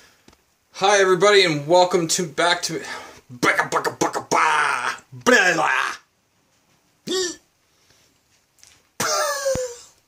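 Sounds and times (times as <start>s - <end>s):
wordless vocal sounds: 2.4s - 6.1s.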